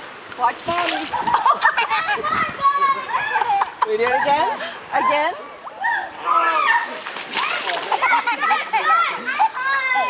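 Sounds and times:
water spraying and splashing: 0.0s - 1.7s, 6.9s - 8.2s
people laughing and squealing: 1.1s - 9.5s.

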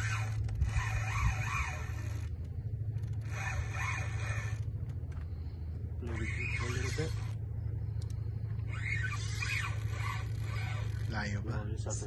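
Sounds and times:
low motor hum: 0.0s - 12.0s.

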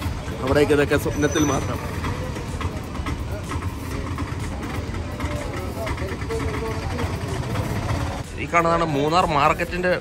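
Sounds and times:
vehicle engines rumbling: 0.0s - 10.0s.

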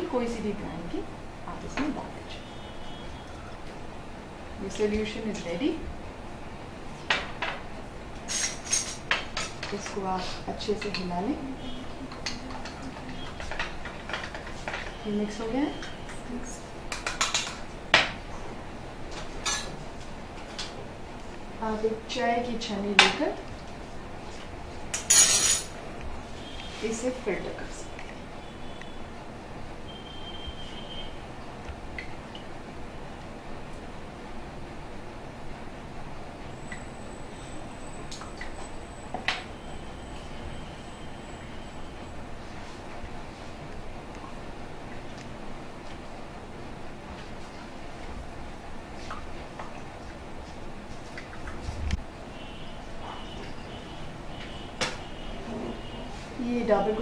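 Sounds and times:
low room hiss: 0.0s - 57.0s.

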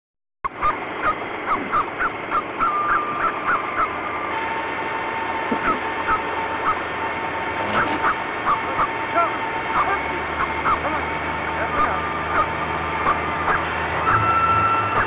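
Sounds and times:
bird calling: 0.6s - 4.3s, 7.6s - 9.0s.

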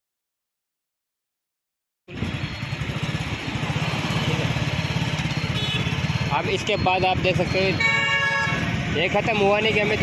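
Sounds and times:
road traffic noise: 2.1s - 10.0s
vehicle engine running: 2.1s - 10.0s.

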